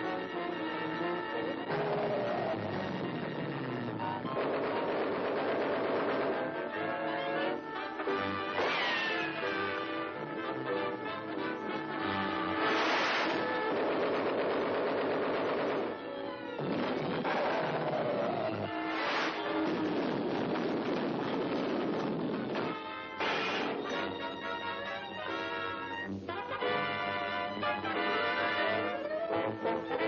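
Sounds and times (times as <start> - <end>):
cartoon rifle gunfire volley: 4.2 - 7.4, 12.6 - 17.7
orchestral score notes: 6.2 - 13.7, 22.7 - 30.0
rocket car engine effect: 12.5 - 16.0.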